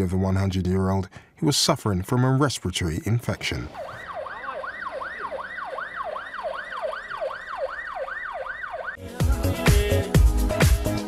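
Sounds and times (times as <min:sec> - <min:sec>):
ambulance siren wailing: 0:03.6 - 0:09.0
loud music with steady beat: 0:09.0 - 0:11.0.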